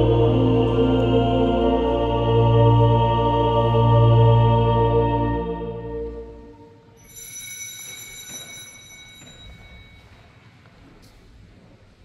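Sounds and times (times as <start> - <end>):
small bell ringing: 7.0 - 10.4.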